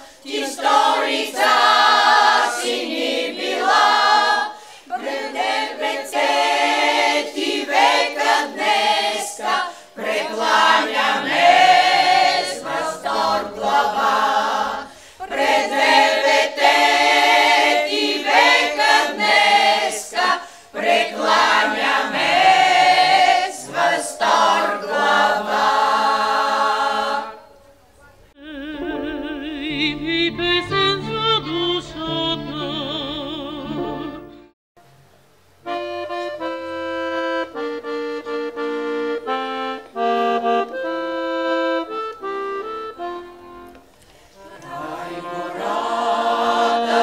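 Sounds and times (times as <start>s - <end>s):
women's choir singing a cappella: 0.0s - 27.7s, 44.4s - 47.0s.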